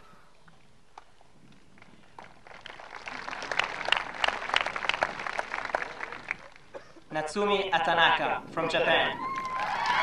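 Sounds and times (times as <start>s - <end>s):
audience applause: 2.2s - 6.7s, 9.3s - 10.0s.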